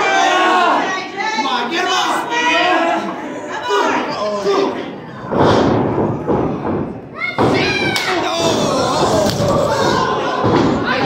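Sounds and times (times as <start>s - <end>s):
thuds on wrestling ring: 5.3s - 9.7s
spectators shouting: 7.2s - 11.0s.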